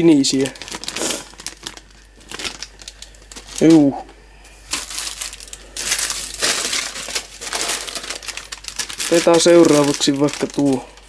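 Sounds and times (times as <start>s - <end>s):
plastic mailer bag crinkling: 0.0s - 11.0s.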